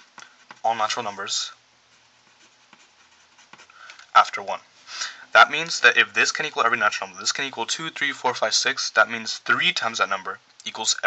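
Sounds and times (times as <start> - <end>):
pen scratching on paper: 0.0 - 1.0, 1.9 - 3.7.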